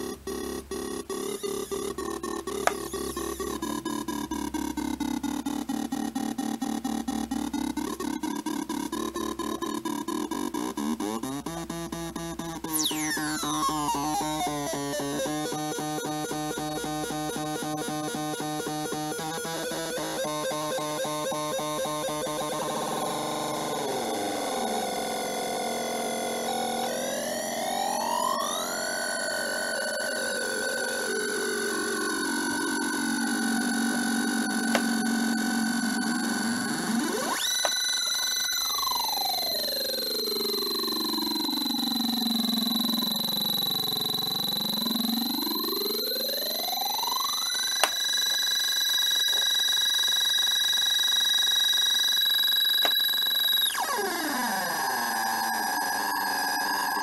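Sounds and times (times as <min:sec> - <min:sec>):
electronic synth tones sliding: 0:00.0 - 0:05.4, 0:06.6 - 0:25.1.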